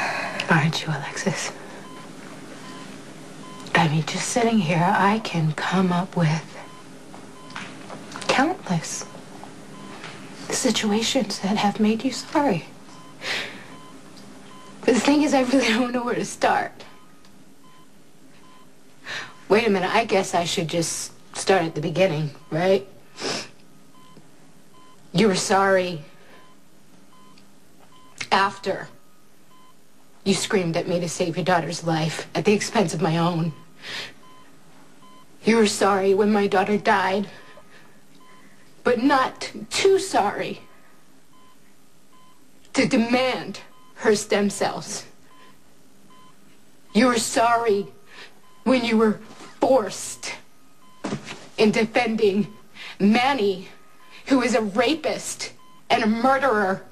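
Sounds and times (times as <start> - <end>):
woman speaking: 0.0 - 1.7, 3.6 - 6.7, 8.2 - 9.2, 10.4 - 12.8, 14.8 - 17.0, 19.4 - 23.0, 25.1 - 26.1, 28.2 - 29.0, 30.2 - 33.6, 35.4 - 37.5, 38.8 - 40.7, 42.7 - 45.2, 46.9 - 48.0, 48.6 - 50.5, 51.6 - 56.9
patient monitor beeps: 0.0 - 21.1, 21.7 - 23.0, 23.7 - 56.5.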